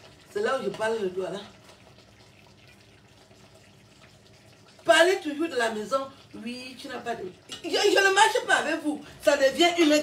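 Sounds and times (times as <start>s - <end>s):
woman's voice: 0.3s - 1.5s, 4.8s - 10.0s.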